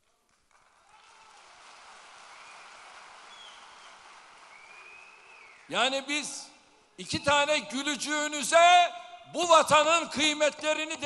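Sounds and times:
audience applause: 0:00.0 - 0:05.7.

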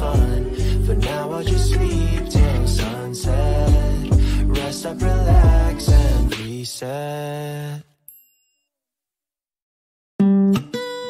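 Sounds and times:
faint bell-like ding: 0:08.1 - 0:08.7.

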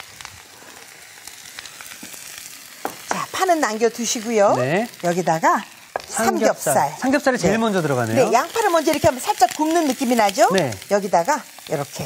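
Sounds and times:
vegetables sizzling in oil: 0:00.0 - 0:12.0.

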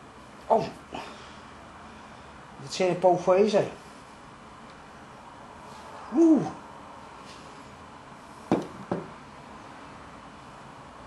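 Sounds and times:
person humming: 0:06.1 - 0:06.6.

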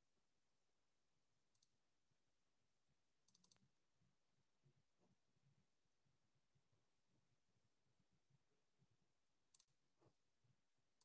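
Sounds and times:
soft clicks: 0:01.5 - 0:01.8, 0:03.2 - 0:03.7, 0:09.5 - 0:10.2.

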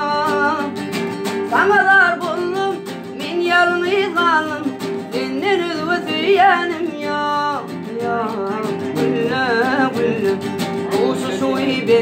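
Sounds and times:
acoustic guitar: 0:00.0 - 0:12.0
man singing: 0:00.0 - 0:12.0.

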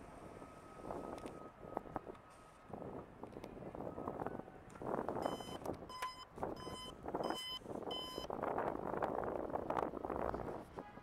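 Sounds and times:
street noise: 0:00.0 - 0:11.0
wind: 0:00.0 - 0:11.0
electronic warning beeps: 0:05.2 - 0:08.3.

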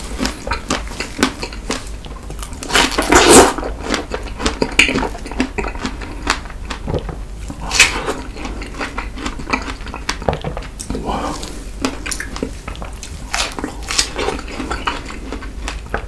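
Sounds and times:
chewing strawberries: 0:00.0 - 0:16.0.

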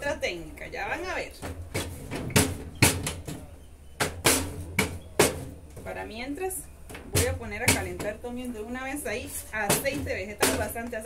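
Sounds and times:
rolling pin knocking on metal: 0:01.4 - 0:06.0, 0:06.9 - 0:08.4, 0:09.6 - 0:11.0
rolling pin rolling dough: 0:07.0 - 0:08.4.

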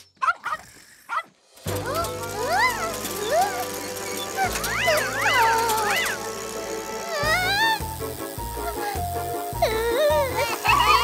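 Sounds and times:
high-pitched cartoon squeaks: 0:00.2 - 0:11.0
background music: 0:01.6 - 0:11.0.

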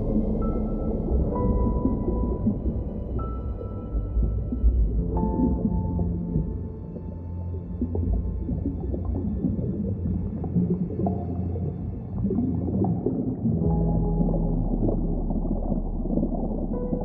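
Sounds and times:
ambient music with deep drone: 0:00.0 - 0:17.0.

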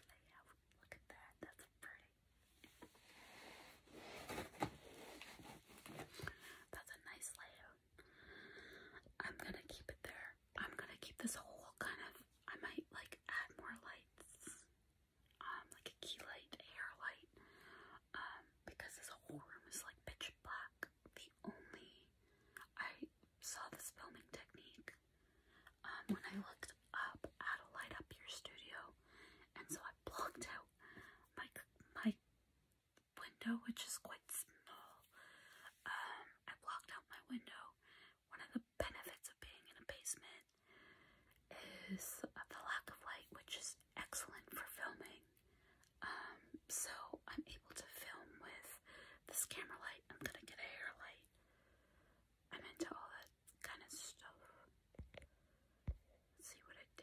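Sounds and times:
woman whispering: 0:00.0 - 0:02.2, 0:06.0 - 0:07.8, 0:09.0 - 0:14.7, 0:15.4 - 0:17.3, 0:18.0 - 0:25.0, 0:25.7 - 0:32.2, 0:33.1 - 0:40.5, 0:41.5 - 0:45.3, 0:46.0 - 0:51.3, 0:52.5 - 0:54.7, 0:56.4 - 0:57.0.

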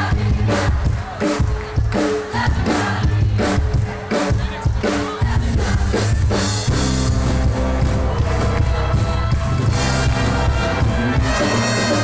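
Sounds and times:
choir singing: 0:00.0 - 0:06.1
band music: 0:00.0 - 0:12.0
steady drum beat: 0:00.0 - 0:12.0.

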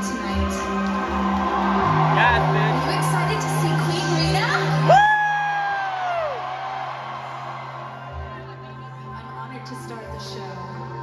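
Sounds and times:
faint crowd noise: 0:00.0 - 0:11.0
person cheering whoo: 0:04.9 - 0:07.2.

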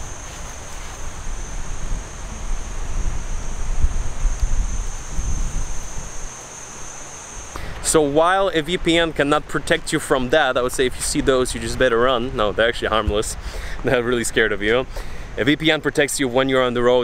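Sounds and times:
high-pitched insect drone: 0:00.0 - 0:08.8
wind rumbling on microphone: 0:00.0 - 0:15.7.

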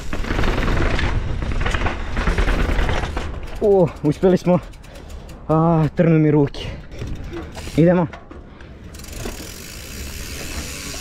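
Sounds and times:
freehub clicking: 0:07.0 - 0:11.0.

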